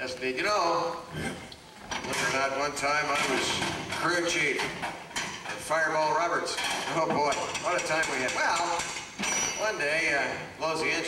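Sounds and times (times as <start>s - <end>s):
drawn-out wordless vocal sounds: 1.1s - 1.6s
clattering: 6.5s - 9.8s.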